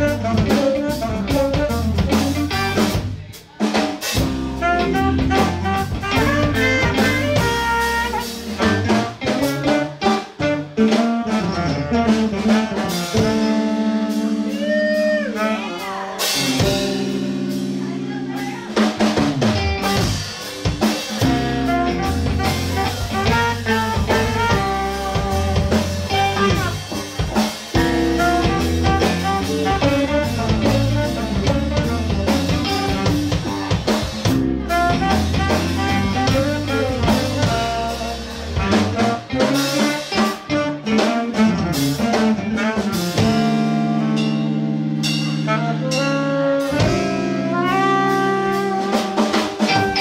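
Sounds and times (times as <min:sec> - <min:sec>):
drum kit: 0:00.0 - 0:50.0
live band playing: 0:00.0 - 0:50.0.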